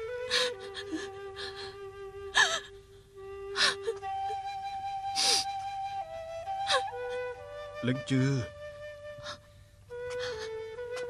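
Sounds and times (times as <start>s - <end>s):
soft background music with flute: 0.0s - 11.0s
woman sobbing: 0.3s - 2.8s, 3.5s - 5.6s, 6.6s - 7.4s.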